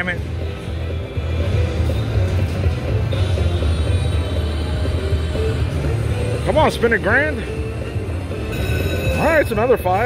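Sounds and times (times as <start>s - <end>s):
slot machine electronic notes: 6.2s - 10.0s.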